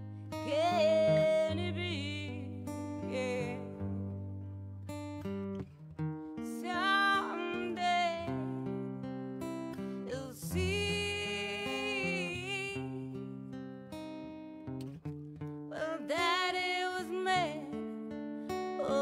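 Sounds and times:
acoustic guitar playing: 0.0s - 19.0s
woman singing: 0.3s - 4.4s, 6.4s - 13.5s, 15.7s - 19.0s.

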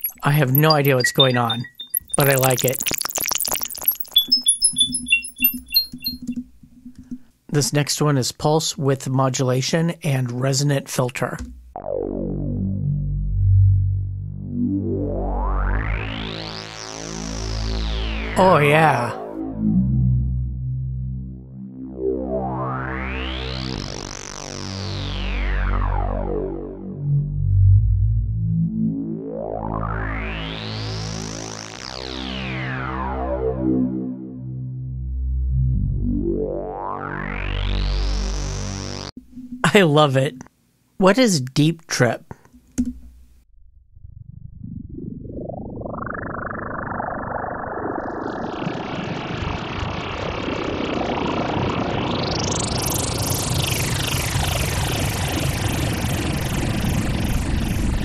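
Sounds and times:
synth sine-tone pings: 0.0s - 6.4s
low pulsing tone: 11.4s - 31.3s, 43.5s - 58.0s.

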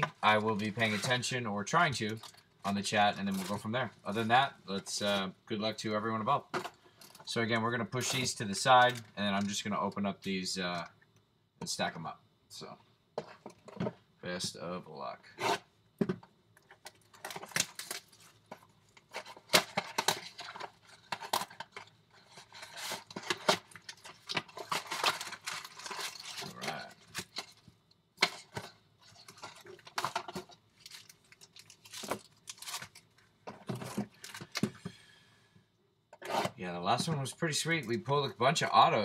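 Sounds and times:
card packs rustling and crinkling: 0.0s - 10.0s, 16.1s - 34.9s, 36.3s - 39.0s.

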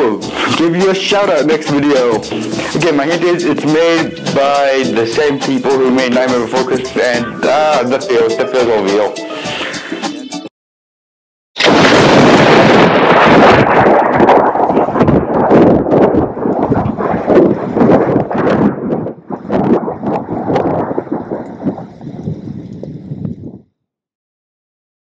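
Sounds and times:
loud blast rumbling and crackling: 11.6s - 22.8s.

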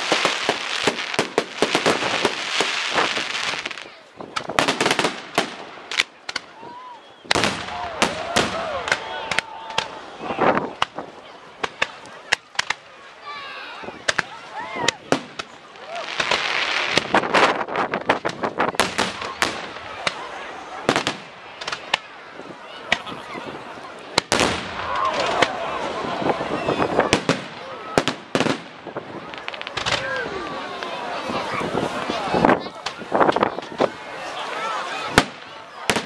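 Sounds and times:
fireworks bangs and crackles: 0.0s - 12.9s, 13.8s - 36.0s.

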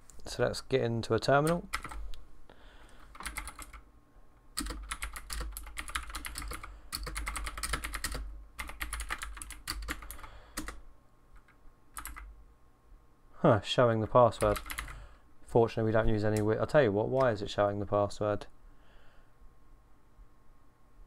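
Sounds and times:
typing on computer keyboard: 1.5s - 2.0s, 3.1s - 3.8s, 4.6s - 10.8s, 11.4s - 12.3s, 14.4s - 15.0s.

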